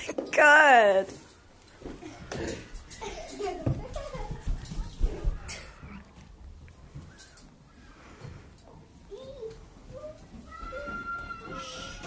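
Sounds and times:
child making vocal noises: 9.1 - 12.0
child's high-pitched squeal: 10.5 - 12.0.

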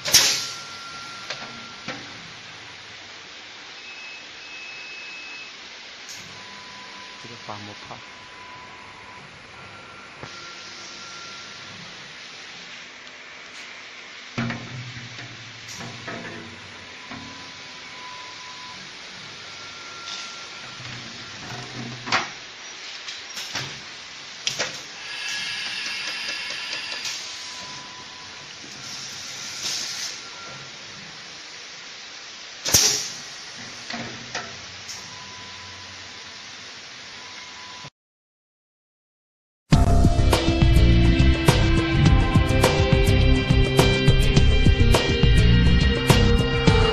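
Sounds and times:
machine hissing: 0.0 - 1.3, 22.3 - 34.1
short steady tones: 25.0 - 28.4.

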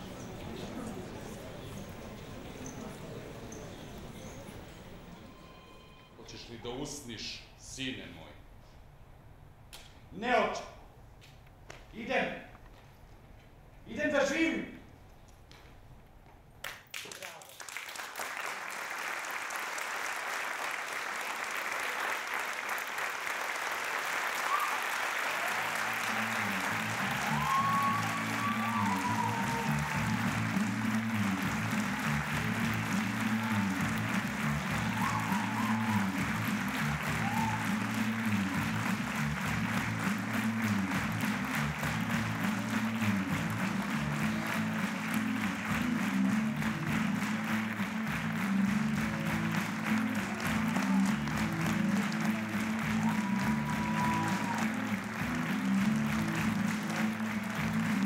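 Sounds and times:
audience applauding: 16.6 - 58.0
music with repeating bass line: 29.1 - 52.3.

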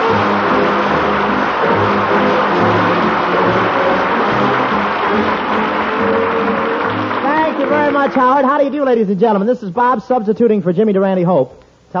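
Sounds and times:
orchestra playing: 0.0 - 8.8.

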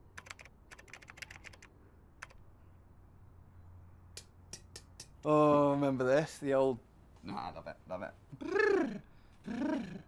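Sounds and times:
faint irregular clicks: 0.1 - 2.4.

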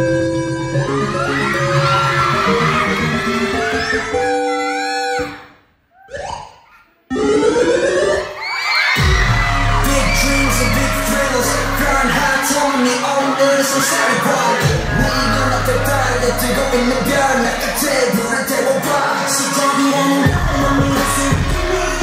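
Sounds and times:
pop music with singing: 0.0 - 4.3, 8.9 - 22.0
heavy bass: 9.0 - 19.0, 20.2 - 22.0.

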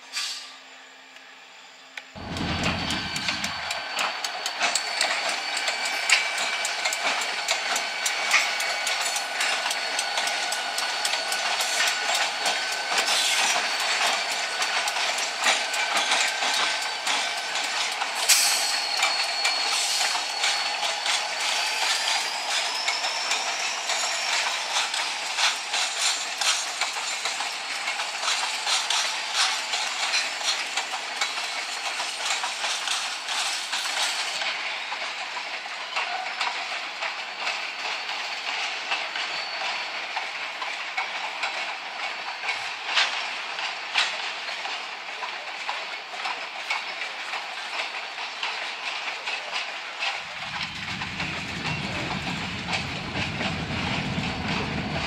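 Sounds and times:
high wavering squeal: 2.2 - 26.4
train wheels clattering on rail: 2.2 - 55.0.

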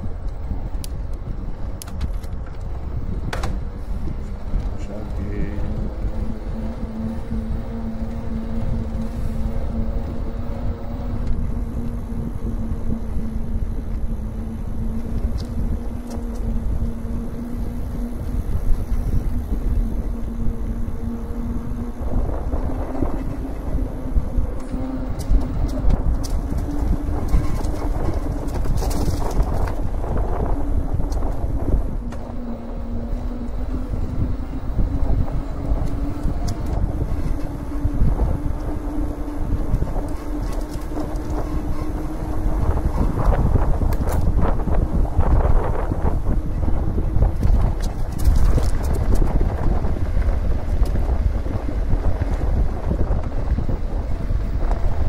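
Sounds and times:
electric bike motor whining: 0.0 - 55.0
tyres rumbling: 0.0 - 55.0
wind on microphone: 0.0 - 55.0.

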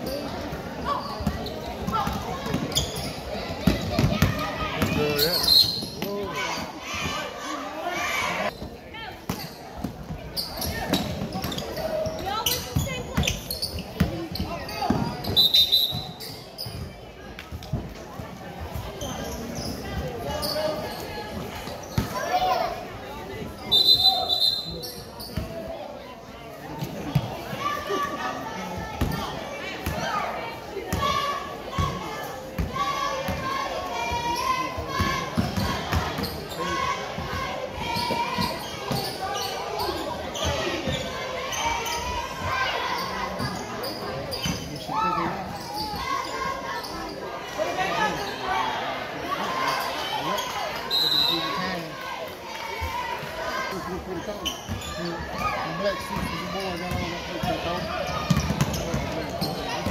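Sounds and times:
referee's whistle: 5.3 - 6.0, 15.2 - 16.4, 23.6 - 25.1, 50.8 - 51.6.

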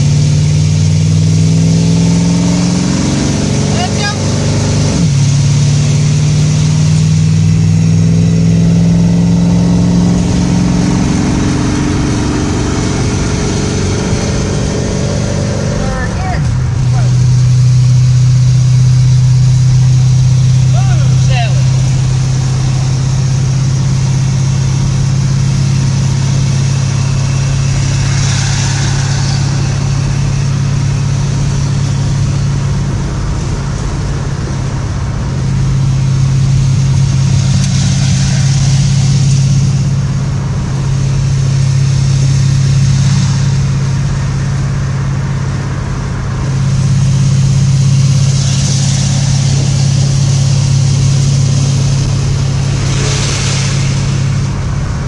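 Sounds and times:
car engine from inside cabin: 0.0 - 55.0.

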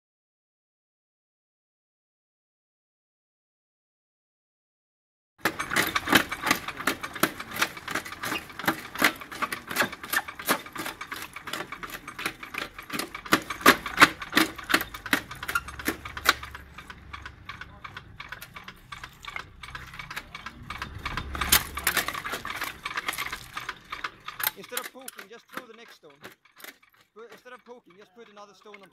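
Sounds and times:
faint low motor hum: 5.4 - 28.9.

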